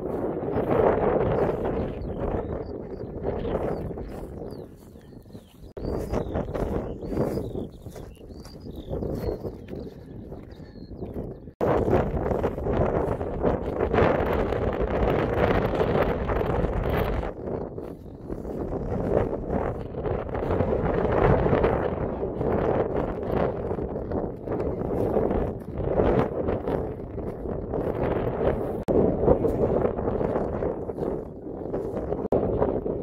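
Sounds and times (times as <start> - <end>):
strong wind buffeting microphone: 0.0 - 33.0.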